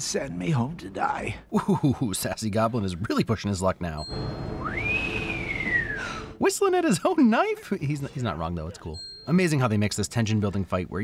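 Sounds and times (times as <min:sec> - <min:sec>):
low rumble: 0:04.1 - 0:06.4
man whistling: 0:04.4 - 0:06.4.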